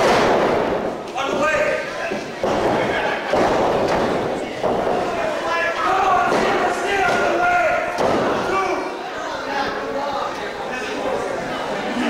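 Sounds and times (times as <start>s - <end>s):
people yelling: 4.8s - 9.6s.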